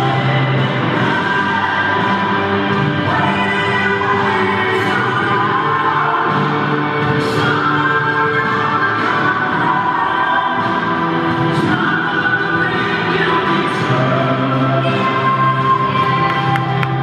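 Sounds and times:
music with long held sung notes: 0.0 - 17.0.

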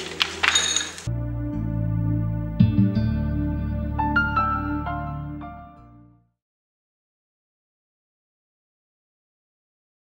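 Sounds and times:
soft background music: 0.2 - 6.3.

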